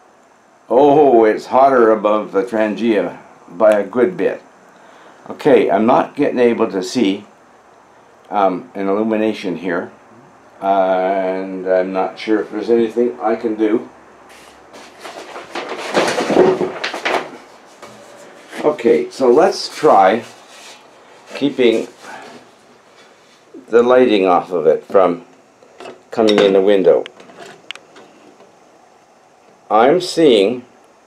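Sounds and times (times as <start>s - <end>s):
rustling and rubbing: 14.3s - 23.6s
alcohol burners hissing: 17.3s - 31.0s.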